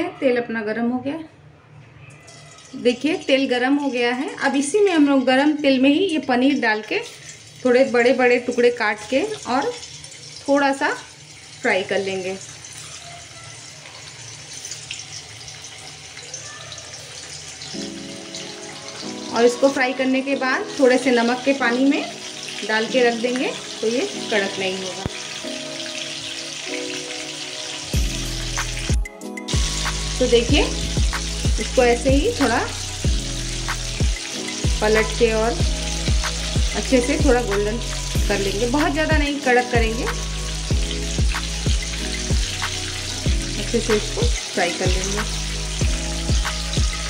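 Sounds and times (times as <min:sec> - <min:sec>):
soft background music: 0:00.0 - 0:47.0
food sizzling in hot oil: 0:02.1 - 0:47.0
background music with beat: 0:27.5 - 0:47.0.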